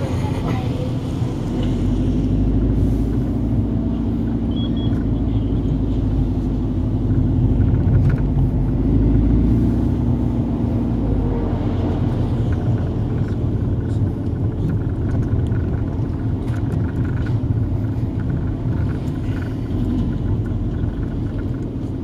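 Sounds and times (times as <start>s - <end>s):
car engine rumble from inside: 0.0s - 22.0s.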